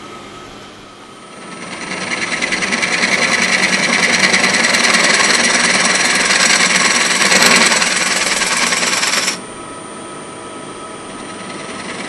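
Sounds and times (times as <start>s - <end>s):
lathe humming: 0.0s - 9.6s, 11.0s - 12.0s
gouge cutting wood on lathe: 1.3s - 9.4s, 11.3s - 12.0s.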